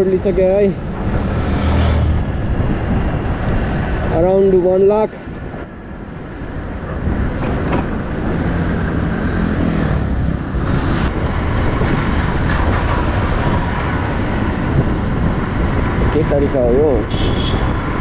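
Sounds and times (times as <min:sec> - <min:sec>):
wind rushing past: 0:00.8 - 0:18.0.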